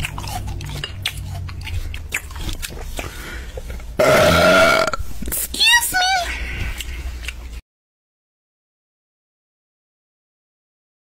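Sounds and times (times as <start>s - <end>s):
loud burp: 4.0s - 5.0s.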